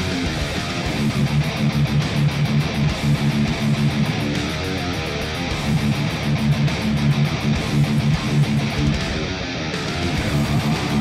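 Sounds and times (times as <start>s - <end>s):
drums: 0.0s - 11.0s
electric guitar metal riff: 0.0s - 11.0s.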